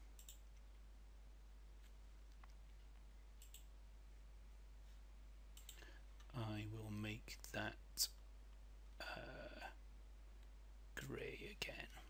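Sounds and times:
computer mouse clicks: 0.1 - 0.6, 3.4 - 3.7, 5.6 - 5.9.

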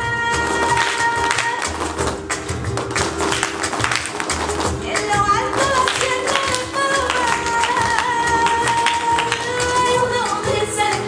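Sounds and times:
rhythmic taps: 0.2 - 11.0
rhythmic hand claps: 0.3 - 11.0.

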